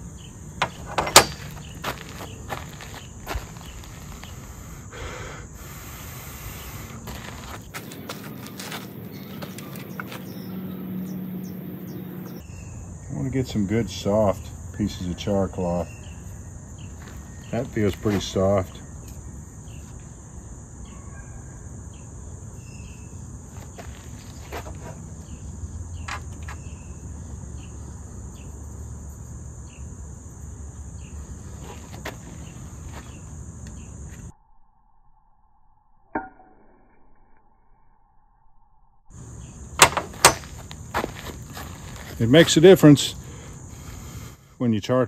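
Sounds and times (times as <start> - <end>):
insects buzzing: 0.0 - 34.3, 39.1 - 45.0.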